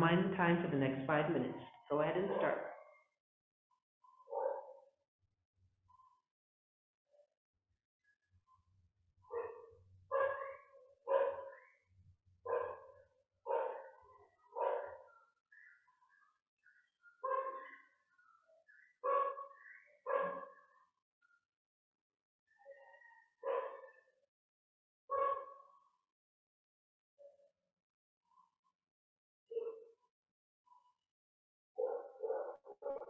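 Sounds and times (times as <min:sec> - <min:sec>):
dog barking: 0:04.3 - 0:04.8, 0:09.3 - 0:11.7, 0:12.5 - 0:15.1, 0:17.2 - 0:17.8, 0:19.0 - 0:20.6, 0:23.4 - 0:24.0, 0:25.1 - 0:25.7, 0:29.5 - 0:29.9, 0:31.8 - 0:33.0.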